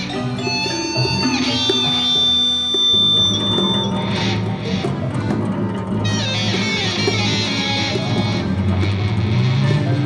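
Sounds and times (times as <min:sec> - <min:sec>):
high steady tone: 0:00.0 - 0:08.6.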